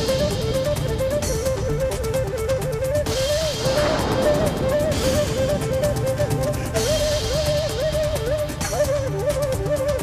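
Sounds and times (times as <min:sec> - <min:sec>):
fast steady beat: 0:00.0 - 0:10.0
wavering instrumental melody: 0:00.0 - 0:10.0.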